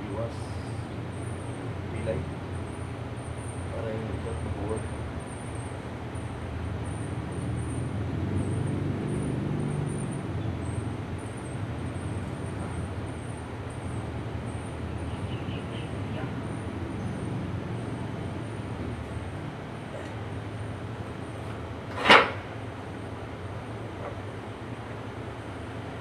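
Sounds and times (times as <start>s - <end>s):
traffic engines rumbling: 0.0s - 26.0s
vehicle passing: 6.5s - 24.7s.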